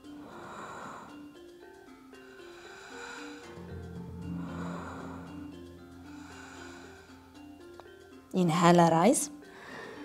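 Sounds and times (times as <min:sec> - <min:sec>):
soft background music: 0:00.0 - 0:10.0
breath whoosh: 0:03.4 - 0:07.4.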